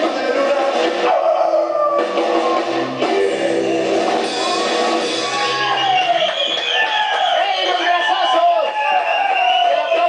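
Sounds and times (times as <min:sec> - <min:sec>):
person singing: 0:00.0 - 0:05.3
drums: 0:00.0 - 0:10.0
low bass notes: 0:01.1 - 0:05.5.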